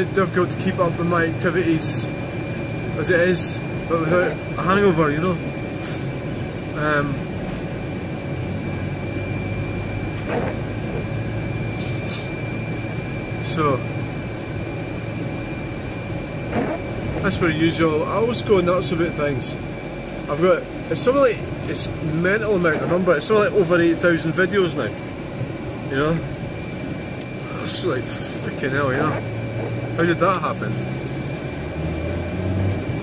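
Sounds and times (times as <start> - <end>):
faint thin whine: 0.1 - 33.0
car engine and tyre noise: 7.4 - 19.6, 26.8 - 33.0.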